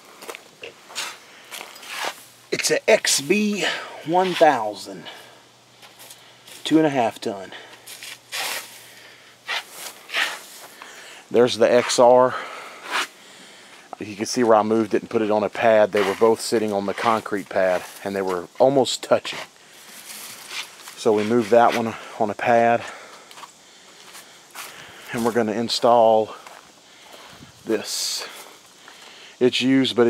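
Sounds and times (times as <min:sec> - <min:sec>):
background hiss: 0:00.0 - 0:30.0
person breathing: 0:01.1 - 0:01.8, 0:03.6 - 0:04.1, 0:04.9 - 0:06.5, 0:08.7 - 0:11.3, 0:12.2 - 0:13.9, 0:19.5 - 0:20.3, 0:22.8 - 0:25.2, 0:26.3 - 0:27.6, 0:28.2 - 0:29.4
footsteps on dry leaves: 0:03.5 - 0:06.7, 0:07.7 - 0:10.9, 0:15.5 - 0:18.5, 0:19.4 - 0:22.0, 0:23.3 - 0:29.1.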